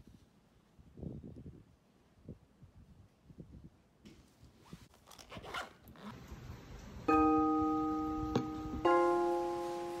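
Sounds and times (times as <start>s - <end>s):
zipper rasp: 4.6s - 6.2s.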